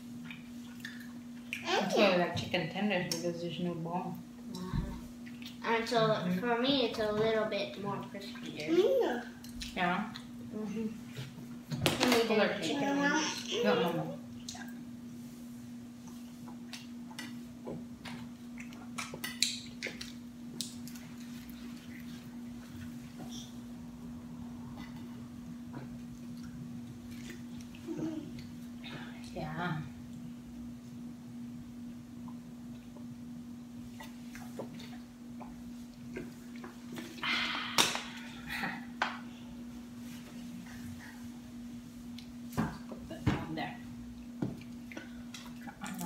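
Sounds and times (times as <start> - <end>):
steady low hum: 0.0 - 46.0.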